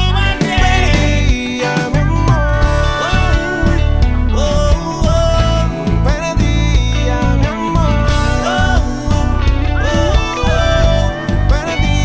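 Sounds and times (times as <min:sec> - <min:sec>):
bass line: 0:00.0 - 0:12.0
guitar: 0:00.0 - 0:12.0
keyboard: 0:00.0 - 0:12.0
man singing: 0:00.0 - 0:12.0.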